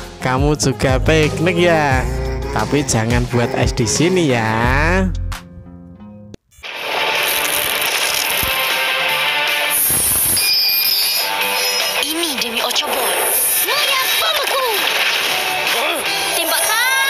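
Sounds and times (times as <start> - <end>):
cartoon music: 0.6 - 5.8.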